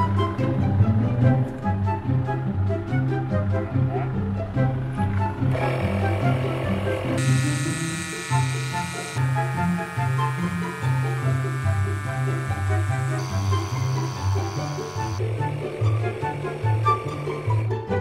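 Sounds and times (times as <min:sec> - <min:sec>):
music with bass line: 0:00.0 - 0:18.0
tire inflator compressor buzzing: 0:05.0 - 0:17.9.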